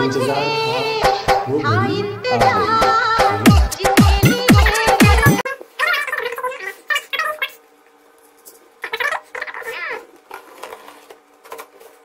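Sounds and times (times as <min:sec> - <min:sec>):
high-pitched vocal sounds: 0:00.0 - 0:07.6.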